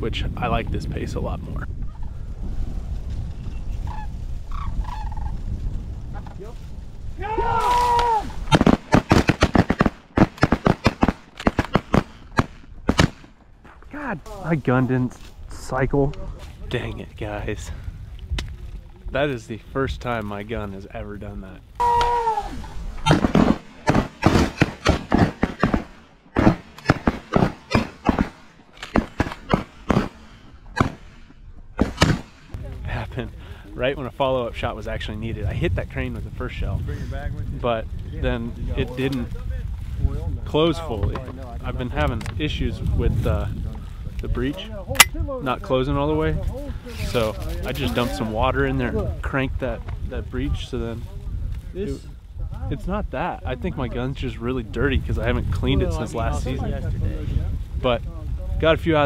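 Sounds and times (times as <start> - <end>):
wind on microphone: 0.0 - 13.2, 13.9 - 25.9, 26.7 - 59.0
calls: 3.6 - 5.4, 21.8 - 24.8
rapid shotgun blasts: 8.4 - 13.5, 22.8 - 32.6.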